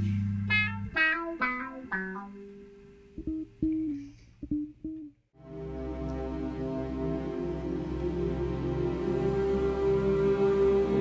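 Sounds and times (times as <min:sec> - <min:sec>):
low held tone: 0:00.0 - 0:05.2
plucked guitar notes: 0:00.5 - 0:05.2.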